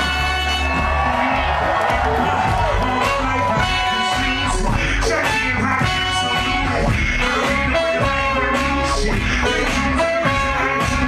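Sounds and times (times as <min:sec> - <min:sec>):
live band playing hip hop: 0:00.0 - 0:11.0
strong bass line: 0:00.0 - 0:11.0
person rapping into microphone: 0:02.7 - 0:11.0.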